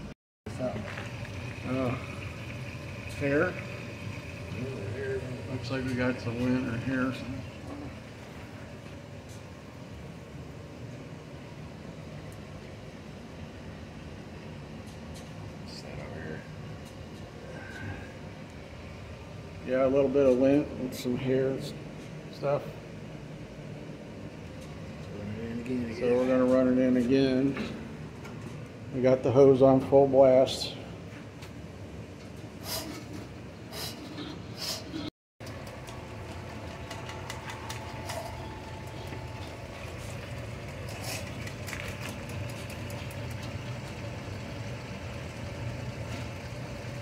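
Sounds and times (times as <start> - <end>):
drain-cleaning machine rumbling: 0.5 - 9.1, 35.4 - 47.0.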